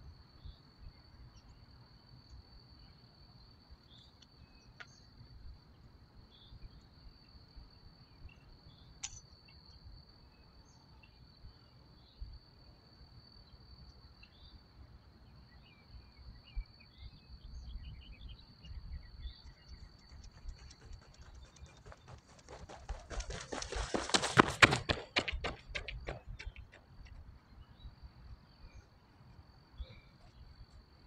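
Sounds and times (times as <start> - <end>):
crickets chirring: 0.0 - 31.0
running footsteps on rubber track: 19.7 - 27.4.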